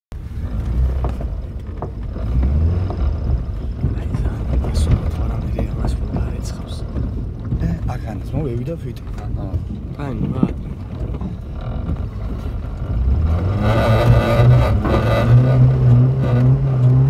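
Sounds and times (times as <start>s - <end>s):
engine rumble under load: 0.1s - 17.0s
car body knocks and rattles: 0.7s - 12.3s.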